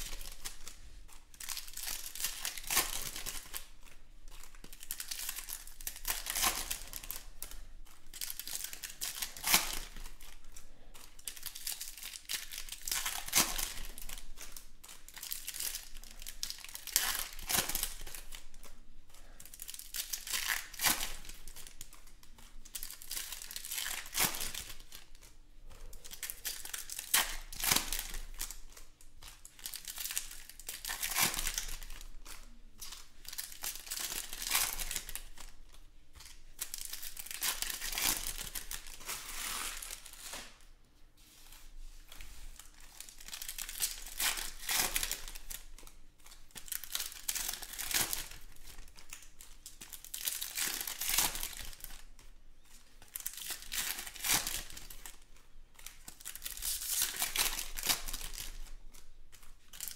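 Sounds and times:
foil wrapper tearing and crinkling: 36.6s - 40.5s, 42.6s - 52.0s, 53.1s - 55.2s, 55.8s - 58.7s.

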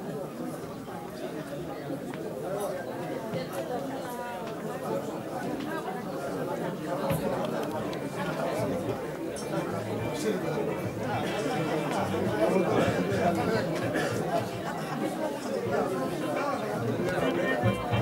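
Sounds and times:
hubbub of overlapping conversation: 0.0s - 18.0s.

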